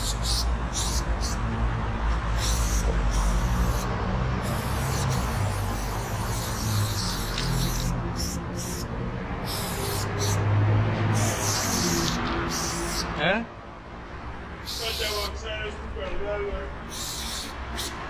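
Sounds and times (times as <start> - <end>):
aerosol spray can hissing: 0.0 - 1.4, 2.4 - 10.4, 11.1 - 13.1, 14.6 - 15.3, 16.9 - 18.0.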